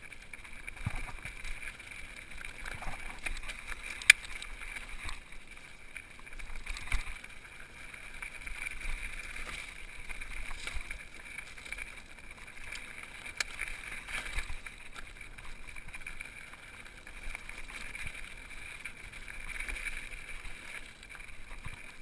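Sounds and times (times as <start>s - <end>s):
bike tyre and frame rattle: 0.0s - 22.0s.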